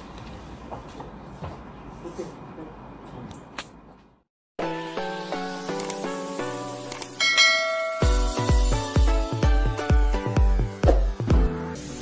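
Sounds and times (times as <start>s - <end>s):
chiming bell sound effect: 7.2s - 8.8s
music with heavy bass beat: 7.2s - 11.6s.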